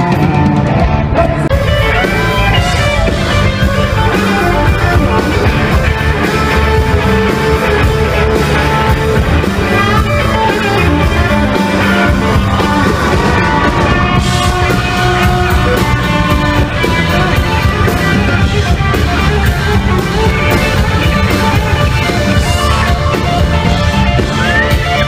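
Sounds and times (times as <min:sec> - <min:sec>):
bass guitar: 0:00.0 - 0:25.0
drum kit: 0:00.0 - 0:25.0
electric guitar: 0:00.0 - 0:25.0.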